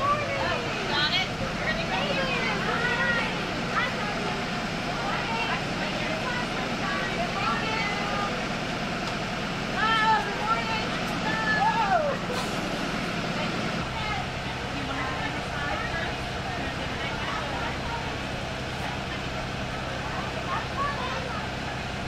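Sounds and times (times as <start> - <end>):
bus engines idling: 0.0 - 22.0
voices calling out: 0.0 - 22.0.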